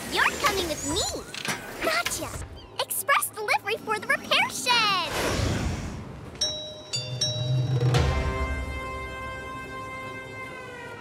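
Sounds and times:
carousel electric whine: 7.4s - 11.0s.

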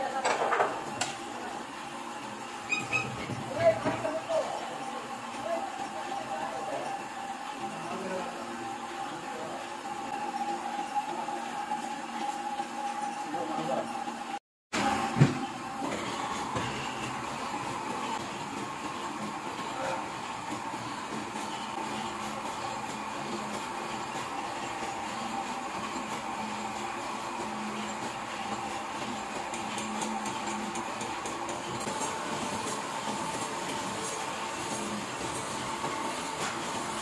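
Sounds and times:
printing press running: 0.0s - 37.0s.

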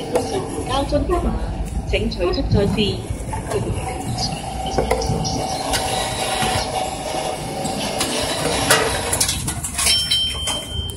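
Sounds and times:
machine mechanism whine: 0.0s - 10.9s
high electronic beep: 3.6s - 7.0s, 9.8s - 10.9s.

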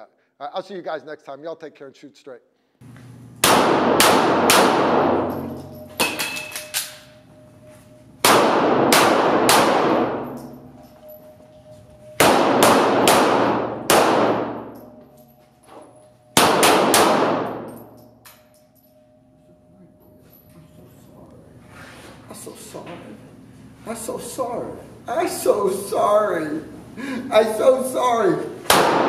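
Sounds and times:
pistol shots echoing: 3.4s - 7.1s, 8.2s - 10.8s, 12.2s - 15.0s, 16.4s - 18.1s, 28.7s - 29.0s.

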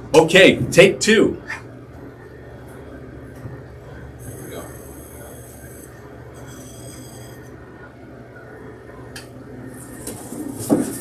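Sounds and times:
conveyor humming: 0.0s - 11.0s.

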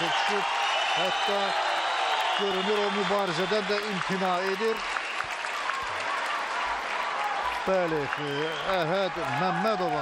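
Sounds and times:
crowd applauding and cheering: 0.0s - 10.0s.

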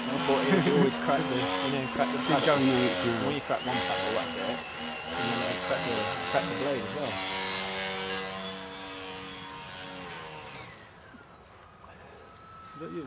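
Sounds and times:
electric motor and propeller whining: 0.0s - 13.0s.

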